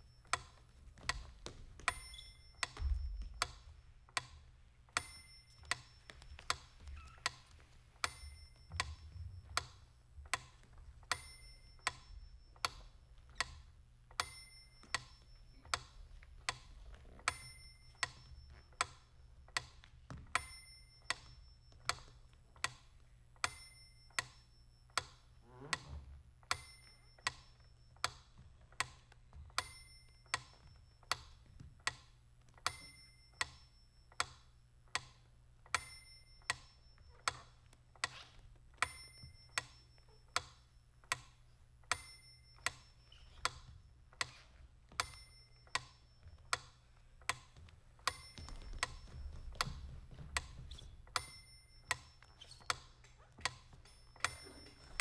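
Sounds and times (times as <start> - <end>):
metronome ticking: 0.0 - 25.2, 38.8 - 55.0
ringing accented tick: 14.2 - 16.6, 23.4 - 25.2, 41.9 - 43.7, 48.0 - 49.8.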